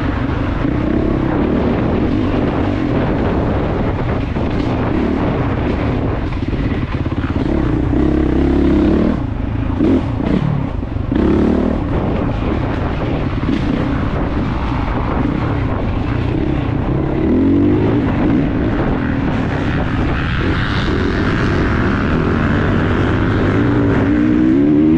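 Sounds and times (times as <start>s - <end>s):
motorcycle engine revving: 0.0s - 24.9s.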